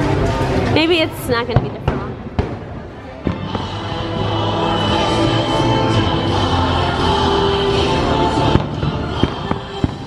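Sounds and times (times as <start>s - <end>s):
background music: 0.0s - 10.0s
fireworks bangs: 1.4s - 5.4s, 8.4s - 10.0s.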